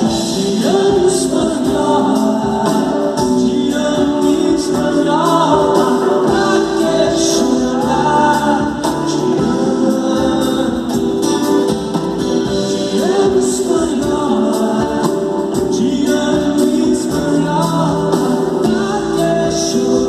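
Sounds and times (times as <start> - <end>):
live pop-rock band playing: 0.0 - 20.0
person singing: 0.0 - 20.0.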